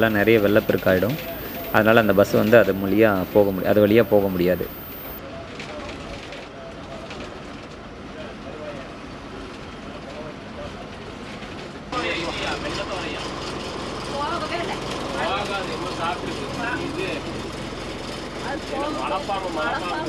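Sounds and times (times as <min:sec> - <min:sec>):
faint voices: 0:00.0 - 0:05.2.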